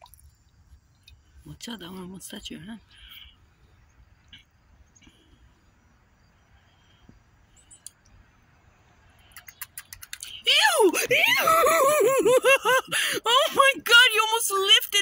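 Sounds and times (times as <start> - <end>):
loud shrieking laughter: 11.0 - 13.4.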